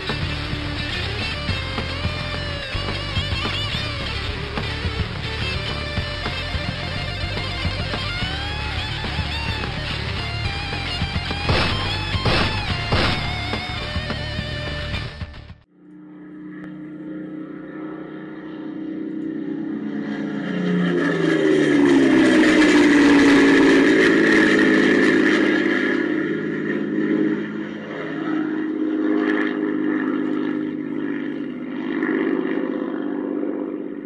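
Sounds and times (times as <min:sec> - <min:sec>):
vehicle engine running: 0:00.0 - 0:34.0.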